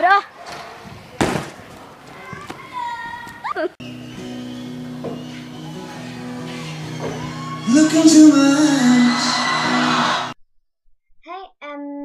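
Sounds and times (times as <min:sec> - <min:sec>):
girls squealing: 0:02.8 - 0:10.4
music with held notes: 0:03.8 - 0:10.3
girls' excited voices: 0:05.3 - 0:10.4.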